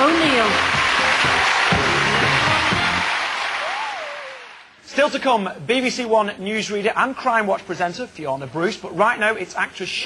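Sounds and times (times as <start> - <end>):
audience applause: 0.0 - 4.8
show music: 0.0 - 4.8.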